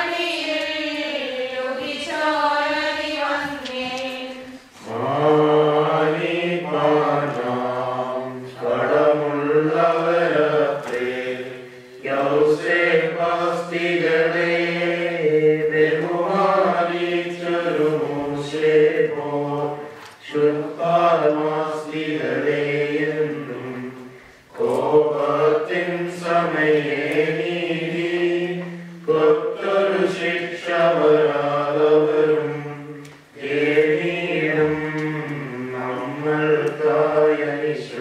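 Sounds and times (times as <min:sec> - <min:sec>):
voices chanting a hymn in unison: 0:00.0 - 0:38.0.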